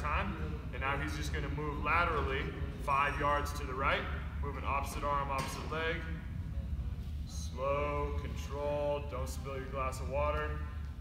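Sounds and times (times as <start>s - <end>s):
man speaking: 0.0s - 6.2s
low room hum: 0.0s - 11.0s.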